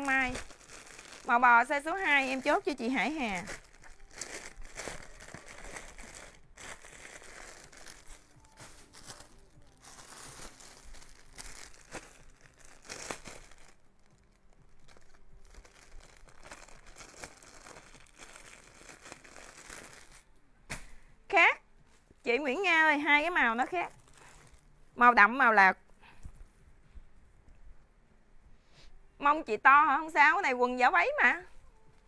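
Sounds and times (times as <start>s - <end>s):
plastic bags crinkling: 0.0s - 20.3s, 23.6s - 24.8s.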